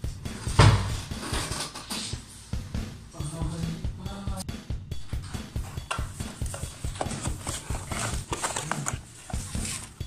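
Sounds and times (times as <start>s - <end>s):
cardboard box being handled: 6.5s - 10.0s.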